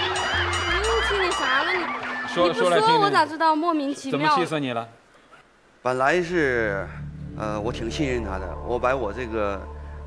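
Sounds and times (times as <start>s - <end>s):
background music: 0.0s - 3.5s, 6.1s - 10.0s.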